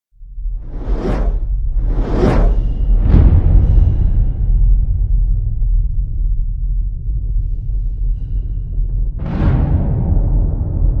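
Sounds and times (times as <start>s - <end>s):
deep low rumble: 0.2s - 11.0s
cinematic whoosh: 0.5s - 4.9s.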